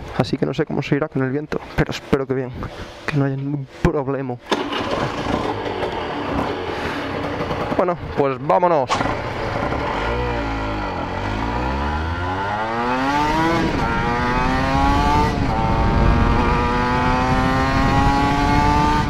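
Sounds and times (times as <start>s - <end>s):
motorcycle engine accelerating: 4.5s - 19.0s
wind buffeting microphone: 13.0s - 19.0s.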